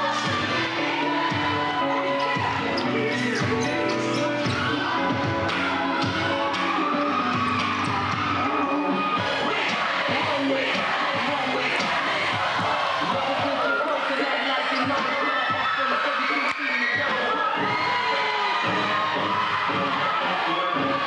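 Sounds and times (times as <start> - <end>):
dance music: 0.0 - 21.0.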